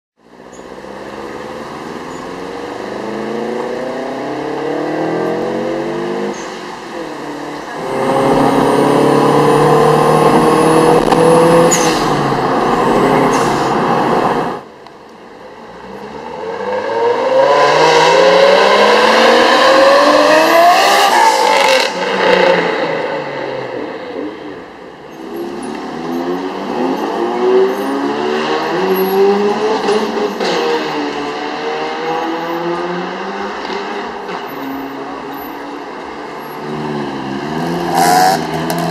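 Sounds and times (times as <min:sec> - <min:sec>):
car engines accelerating hard: 0:00.8 - 0:14.7, 0:15.4 - 0:38.9.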